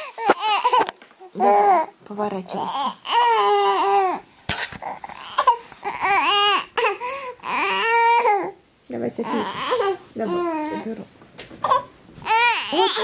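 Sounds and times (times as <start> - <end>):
infant crying: 0.0 - 1.9, 2.6 - 8.6, 9.2 - 11.0, 11.6 - 13.0.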